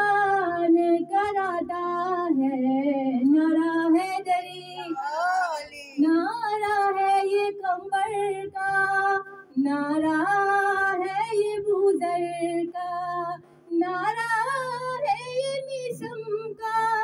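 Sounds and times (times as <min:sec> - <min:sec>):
woman singing into a microphone: 0:00.0 - 0:05.1, 0:06.0 - 0:17.0.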